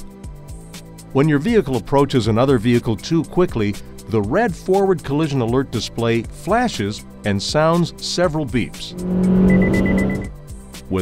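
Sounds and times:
car noise: 0:08.7 - 0:10.3
rapid high beeps: 0:09.4 - 0:10.3.

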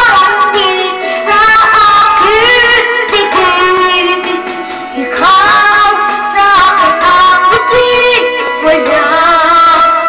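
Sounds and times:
high voice singing with vibrato: 0:00.0 - 0:10.0.

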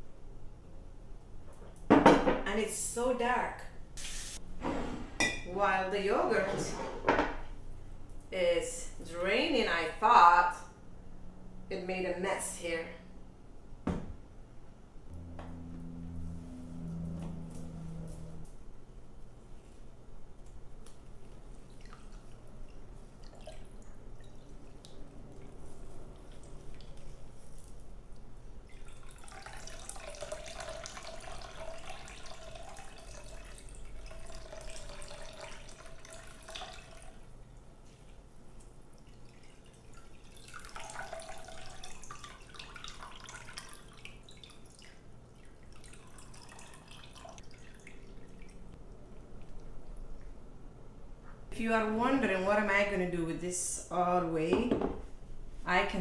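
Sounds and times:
light drips: 0:20.4 - 0:50.6
liquid pouring into glass jug: 0:21.4 - 0:27.8, 0:28.6 - 0:37.4, 0:38.2 - 0:48.7.

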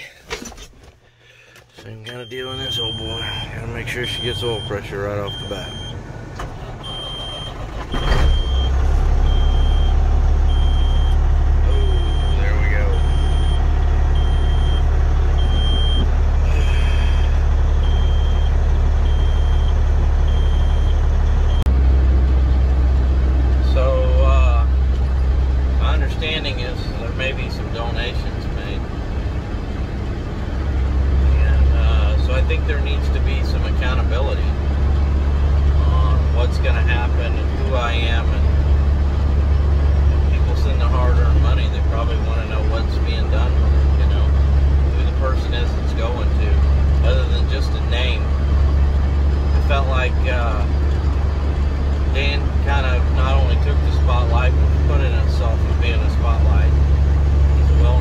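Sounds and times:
diesel truck engine running: 0:01.0 - 0:58.0.

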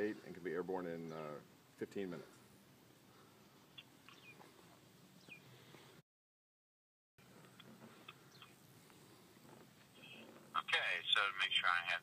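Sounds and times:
outdoor background hiss: 0:00.0 - 0:06.0, 0:07.2 - 0:12.0.

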